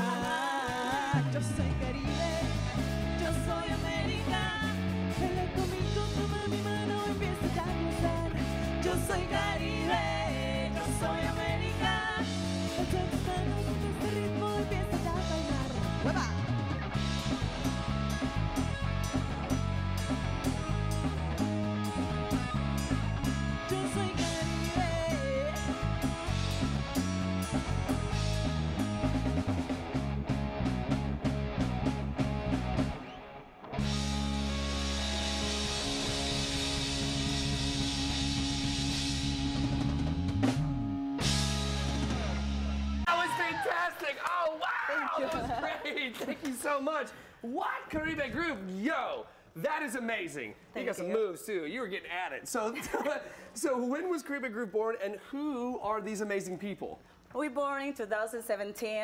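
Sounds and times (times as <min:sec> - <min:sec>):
drum kit: 0:00.0 - 0:33.1, 0:33.8 - 0:43.6
electric bass: 0:00.0 - 0:43.2
electric guitar: 0:00.0 - 0:43.6.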